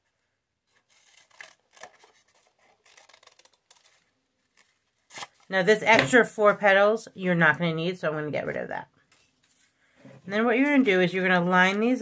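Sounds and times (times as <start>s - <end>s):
scissors snipping paper: 0.7s - 5.4s.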